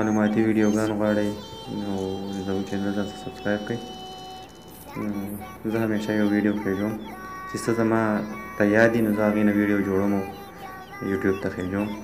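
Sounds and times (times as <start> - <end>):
man narrating: 0.0 - 4.0, 4.9 - 12.0
faint background music: 0.0 - 12.0.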